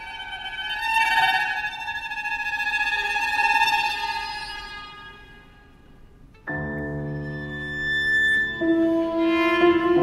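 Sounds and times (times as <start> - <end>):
violins and viola tremolo: 7.0 - 10.0.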